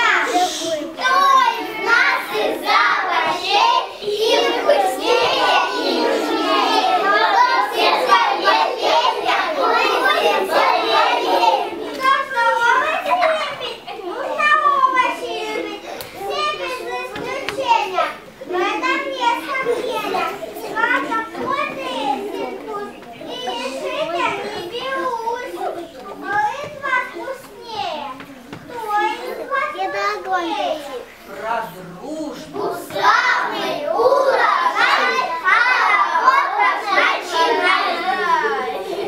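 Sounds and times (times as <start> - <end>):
young children talking: 0.0 - 39.0.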